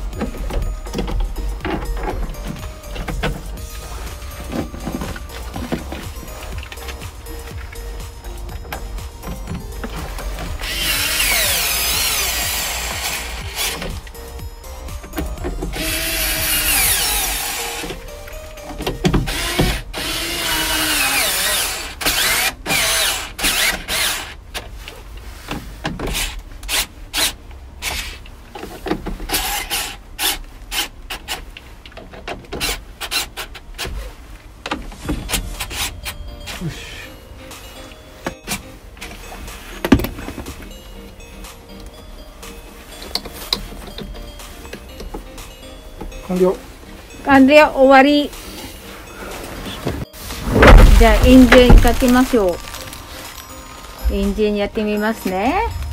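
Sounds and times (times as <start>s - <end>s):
electric screwdriver whining: 10.5s - 14.0s, 15.7s - 17.9s, 19.2s - 24.3s.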